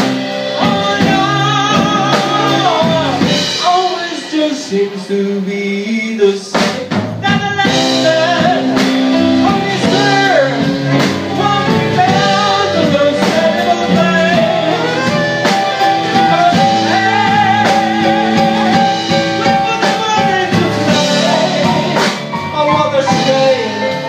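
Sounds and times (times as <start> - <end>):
electric guitar: 0.0 - 3.9
saxophone long bending notes: 0.0 - 4.0, 7.8 - 24.0
bass: 0.0 - 24.0
drums: 0.0 - 24.0
piano: 0.0 - 24.0.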